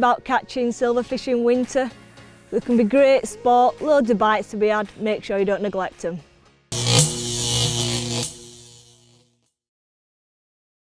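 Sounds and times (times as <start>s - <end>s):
low electrical buzz with hiss: 6.8s - 9.2s.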